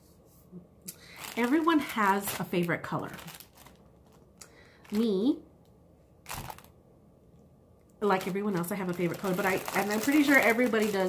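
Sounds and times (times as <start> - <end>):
plastic packaging crinkling: 1.0 - 5.3, 6.2 - 6.8, 8.0 - 11.0.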